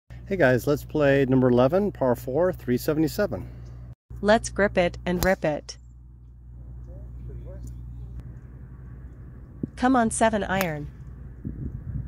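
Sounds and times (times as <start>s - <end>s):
low outdoor rumble: 0.1s - 12.0s.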